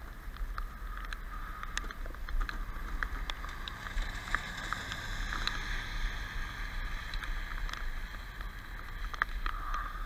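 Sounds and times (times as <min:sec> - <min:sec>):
light ticks: 0:00.0 - 0:05.9, 0:06.7 - 0:10.0
rain on wet pavement: 0:00.0 - 0:10.0.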